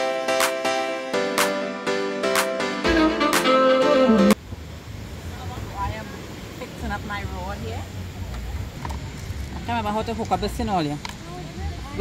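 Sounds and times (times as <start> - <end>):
plucked guitar music: 2.2 - 4.4.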